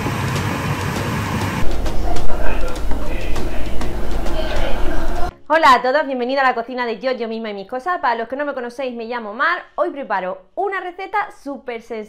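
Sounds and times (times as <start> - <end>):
loud uneven sound: 0.1 - 5.3.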